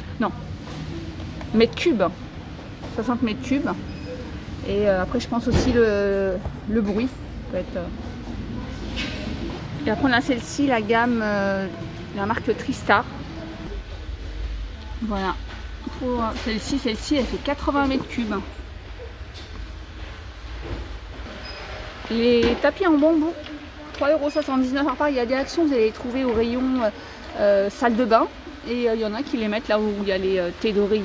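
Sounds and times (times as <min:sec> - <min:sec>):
shop background rumble: 0:00.0 - 0:31.0.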